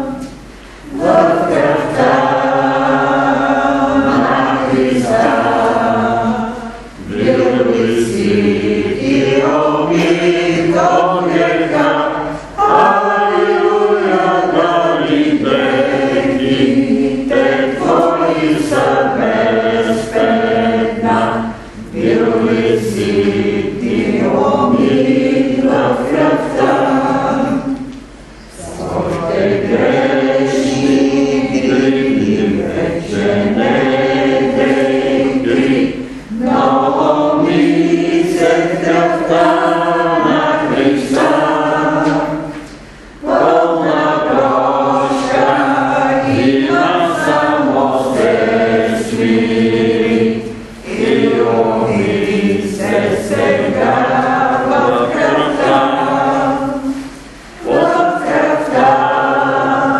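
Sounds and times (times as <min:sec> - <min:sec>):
choir singing: 0:00.0 - 0:59.9.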